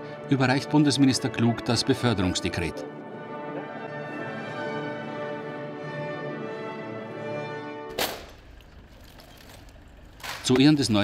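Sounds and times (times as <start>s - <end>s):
rifles struck in unison: 7.9s - 8.4s.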